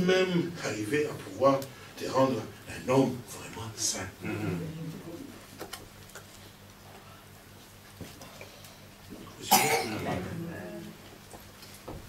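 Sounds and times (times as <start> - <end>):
man humming: 4.2 - 5.0.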